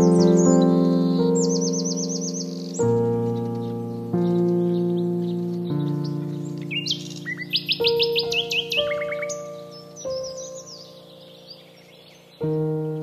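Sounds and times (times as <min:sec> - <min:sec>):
birds chirping: 0:00.0 - 0:13.0
slow held music chords: 0:02.4 - 0:13.0.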